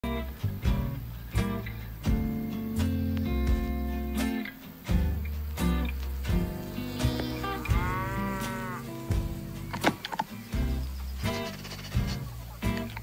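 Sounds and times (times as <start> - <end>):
background music: 0.0 - 13.0
cow mooing: 6.8 - 9.0.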